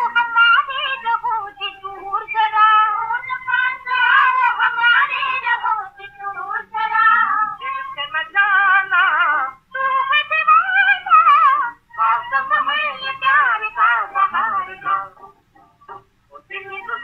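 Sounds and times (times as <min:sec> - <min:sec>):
high voice singing with vibrato: 0:00.0 - 0:17.0.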